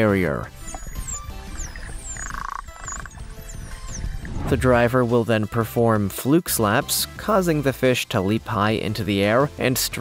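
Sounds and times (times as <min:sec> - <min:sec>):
background music: 0:00.0 - 0:10.0
dolphin buzzing pulsed calls: 0:00.5 - 0:04.3
dolphins whistling underwater: 0:00.5 - 0:04.3.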